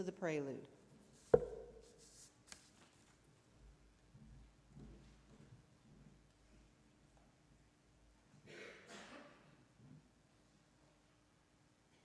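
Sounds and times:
thump on wooden lectern: 1.4s - 1.8s.

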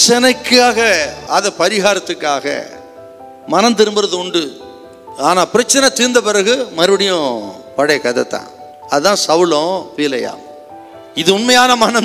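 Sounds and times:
man narrating: 0.0s - 2.8s, 11.1s - 12.0s
soft background music: 0.0s - 12.0s.

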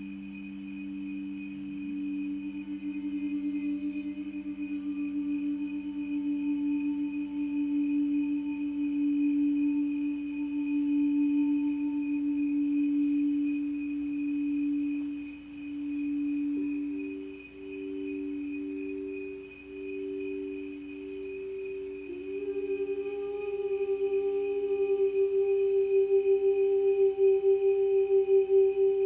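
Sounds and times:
higher bowl tone: 0.0s - 29.0s
singing bowls ringing: 0.0s - 29.0s.

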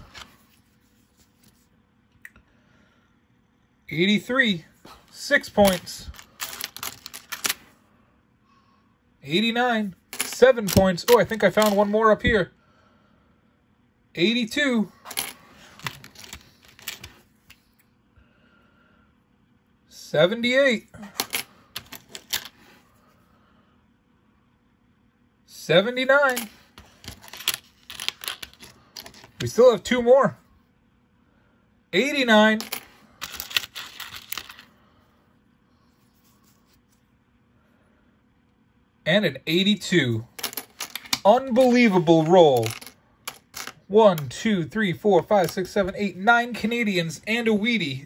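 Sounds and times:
coins clinking on a table: 5.6s - 7.6s, 10.1s - 11.9s, 15.1s - 17.2s, 21.0s - 22.6s, 26.2s - 29.4s, 32.6s - 34.7s, 40.3s - 41.2s, 42.6s - 43.8s.

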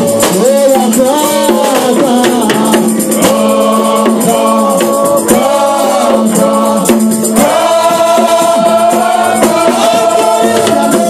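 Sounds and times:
backing vocalists singing: 0.0s - 11.0s
lead singer singing: 0.0s - 11.0s
percussion hits: 0.0s - 11.0s.

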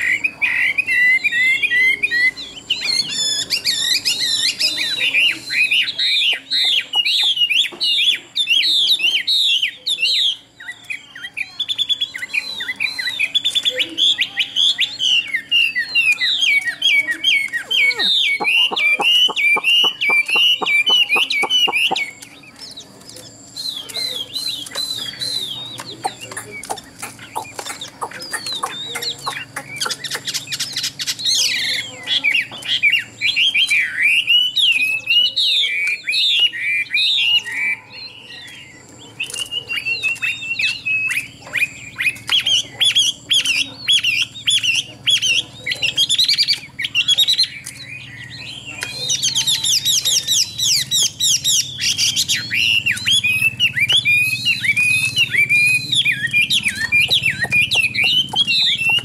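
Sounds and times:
bird singing whistled phrases: 0.0s - 59.0s.

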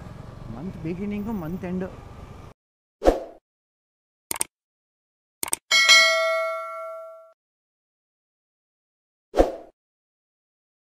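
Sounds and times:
bright bell ding: 5.7s - 7.4s.

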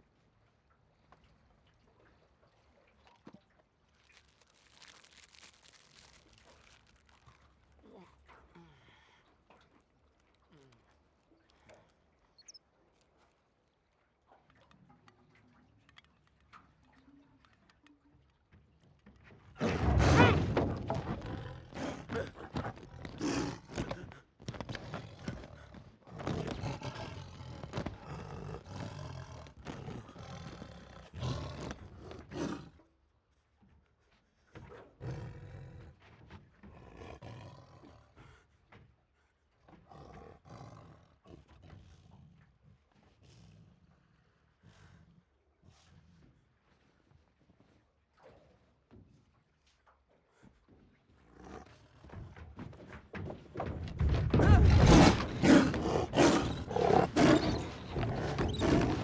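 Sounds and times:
tiger roaring: 19.6s - 32.8s, 54.0s - 59.0s.

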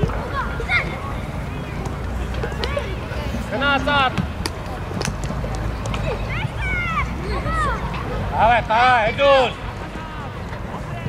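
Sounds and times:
child shouting: 6.2s - 7.9s.

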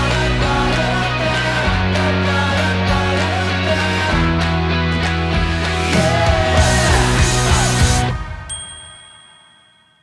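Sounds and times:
rock background music: 0.0s - 8.8s
bright ding: 8.5s - 10.0s.

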